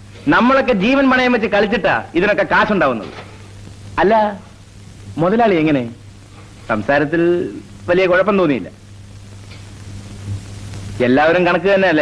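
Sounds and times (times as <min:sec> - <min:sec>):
film soundtrack hiss and hum: 0:00.0 - 0:12.0.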